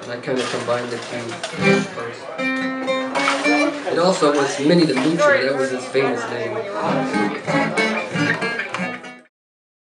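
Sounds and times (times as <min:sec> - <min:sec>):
acoustic guitar picking: 0:00.0 - 0:09.3.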